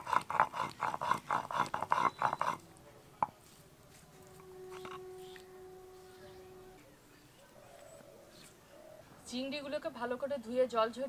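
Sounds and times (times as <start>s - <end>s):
stone pestle grinding on stone: 0.0s - 2.6s, 4.7s - 5.0s.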